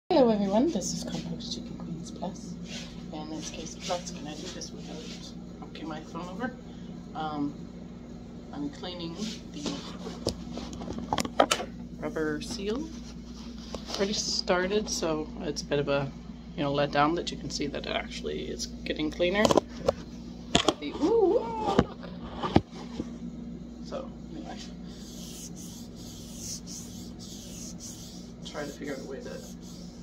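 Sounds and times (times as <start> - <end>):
steady low hum: 0.1 - 30.0.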